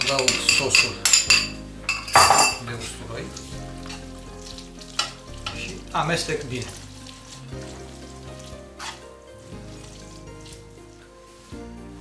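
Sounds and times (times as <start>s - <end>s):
wooden spoon stirring: 0.0s - 11.7s
background music: 0.0s - 12.0s
pasta sizzling in pan: 3.2s - 12.0s.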